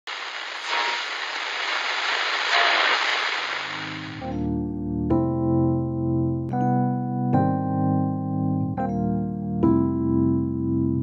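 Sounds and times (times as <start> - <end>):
radio static hiss: 0.0 - 4.3
low keyboard chord: 4.0 - 11.0.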